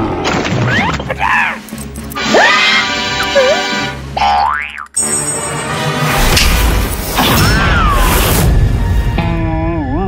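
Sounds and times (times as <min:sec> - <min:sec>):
music: 0:00.0 - 0:10.0
springy cartoon boing: 0:04.2 - 0:04.9.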